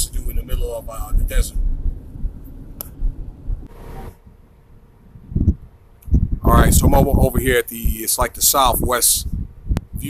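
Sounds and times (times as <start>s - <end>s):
road rumble inside car: 0.0s - 8.1s.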